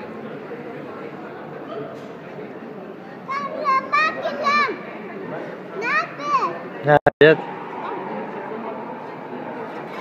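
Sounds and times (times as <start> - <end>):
background hubbub: 0.0 - 10.0.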